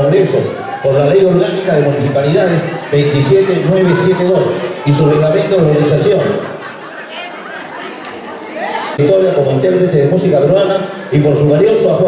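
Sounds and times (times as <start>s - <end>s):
faint chatter of voices: 0.0s - 9.0s.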